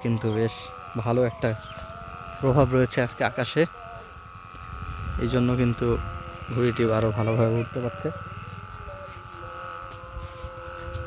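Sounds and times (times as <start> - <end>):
kite hummer droning: 0.0 - 11.0
wind rumble on microphone: 0.0 - 11.0.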